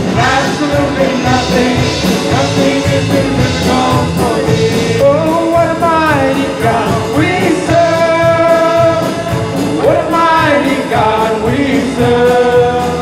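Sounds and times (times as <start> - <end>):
electric guitar band: 0.0 - 13.0
group singing together: 0.0 - 13.0.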